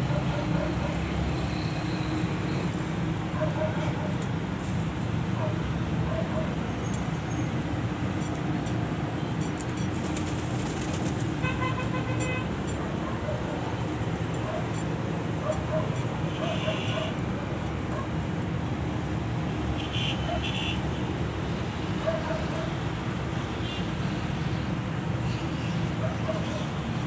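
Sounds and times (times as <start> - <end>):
road traffic rumble: 0.0 - 27.0
vehicle horn toot: 11.4 - 12.5.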